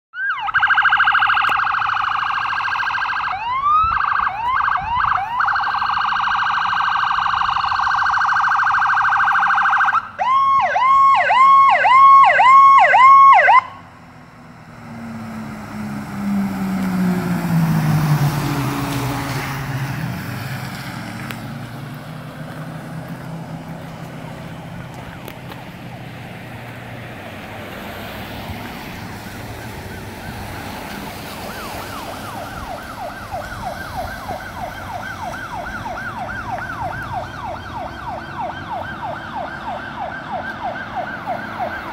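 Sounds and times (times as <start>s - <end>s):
electronic siren yelping: 0.1s - 14.0s, 29.4s - 41.9s
vehicle engine passing: 1.9s - 41.9s.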